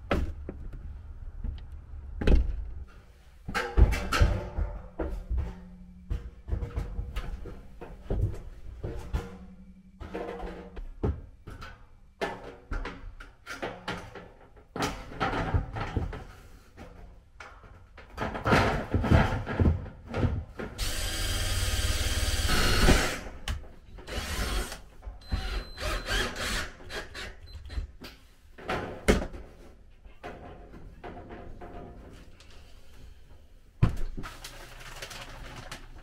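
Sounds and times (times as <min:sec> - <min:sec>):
cordless drill driving screw: 0:25.4 - 0:27.4
thin metal sheet rattling: 0:34.2 - 0:36.0.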